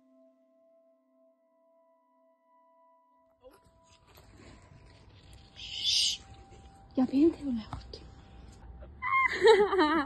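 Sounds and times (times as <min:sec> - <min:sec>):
steady music tones: 0:00.0 - 0:10.0
outdoor background noise: 0:03.4 - 0:10.0.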